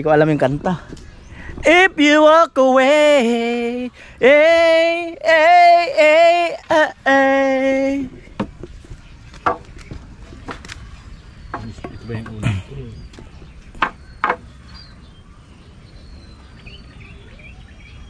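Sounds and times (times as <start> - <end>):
man singing long notes: 1.6 - 8.2
wooden boards knocking and clattering: 8.4 - 10.8, 11.5 - 14.5.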